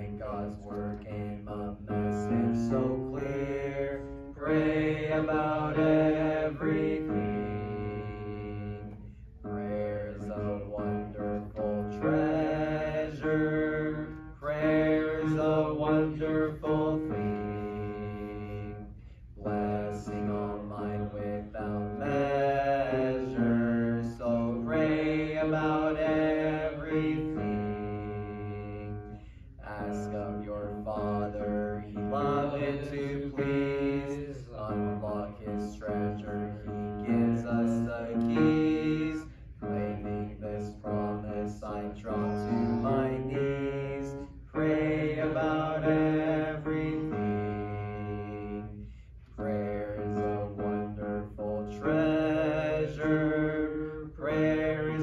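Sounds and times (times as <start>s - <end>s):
congregation singing a hymn: 0.0s - 55.0s.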